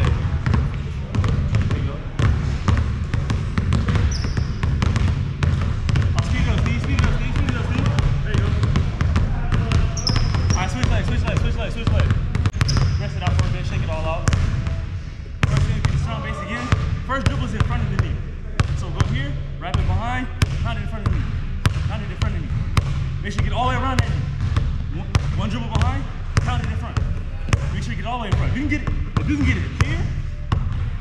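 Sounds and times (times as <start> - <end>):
basketballs bouncing on hardwood: 0.0 - 14.8, 15.4 - 16.1, 16.7 - 31.0
sneaker squeaks: 2.2 - 5.6, 9.1 - 11.4, 12.2 - 13.5
faint voices talking: 6.0 - 20.8.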